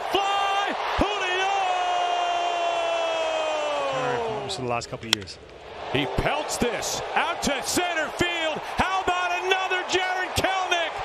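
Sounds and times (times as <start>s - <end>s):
broadcaster commentary: 6.0s - 11.0s.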